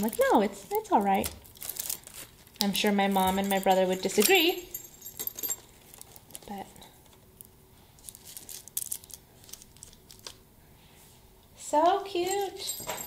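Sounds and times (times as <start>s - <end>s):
plastic wrapper crinkling: 0.0s - 2.8s, 5.8s - 10.4s.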